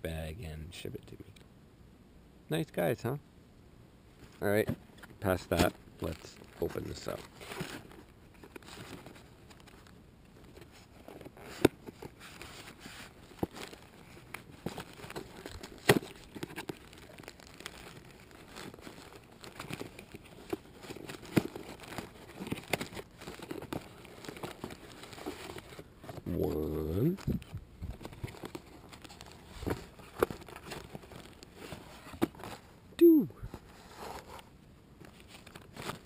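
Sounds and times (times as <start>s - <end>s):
plastic bag crinkling: 6.0s - 26.2s, 27.1s - 32.6s
cardboard tearing: 10.9s - 26.6s, 28.0s - 32.7s.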